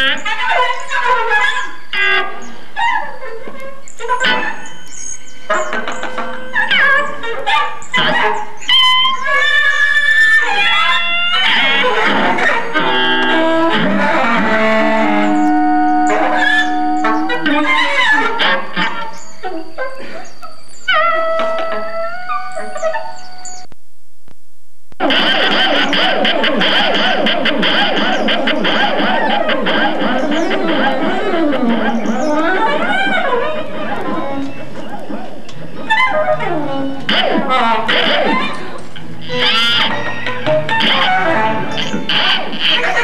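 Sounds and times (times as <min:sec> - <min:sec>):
improvised saxophone guitar and keyboards: 0:00.0 - 0:02.8, 0:10.2 - 0:23.8, 0:25.0 - 0:43.0
saxophone long high note: 0:14.2 - 0:17.8.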